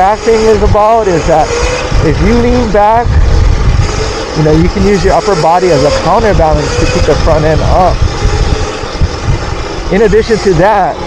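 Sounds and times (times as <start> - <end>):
tyres rolling on concrete: 0.0 - 11.0
wind buffeting microphone: 0.0 - 11.0.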